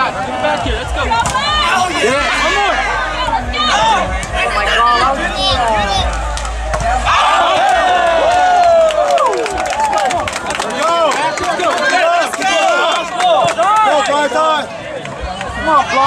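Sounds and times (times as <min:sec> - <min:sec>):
crowd yelling and shouting: 0:00.0 - 0:16.0.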